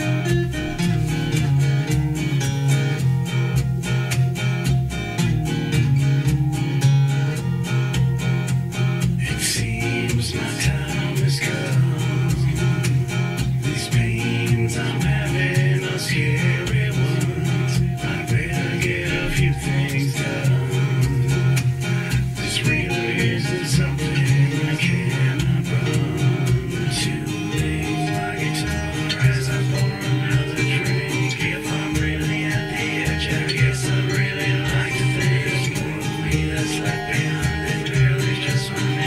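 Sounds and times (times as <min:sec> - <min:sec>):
guitar-led country music: 0:00.0 - 0:39.0.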